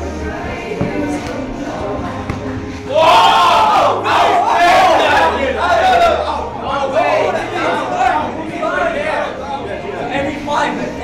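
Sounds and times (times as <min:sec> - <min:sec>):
men shouting and whooping: 0:02.9 - 0:08.3.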